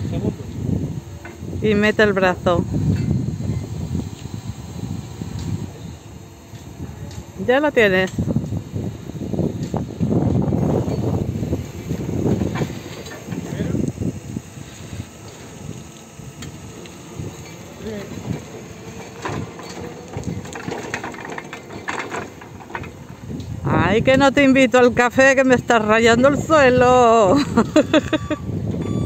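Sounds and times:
electric forklift driving: 0:00.0 - 0:29.0.

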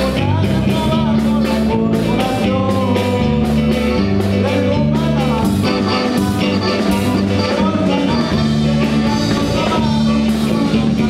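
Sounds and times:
drum kit beat: 0:00.0 - 0:11.0
electric guitar: 0:00.0 - 0:11.0
walking electric bass line: 0:00.0 - 0:11.0
accordion melody: 0:01.3 - 0:11.0.

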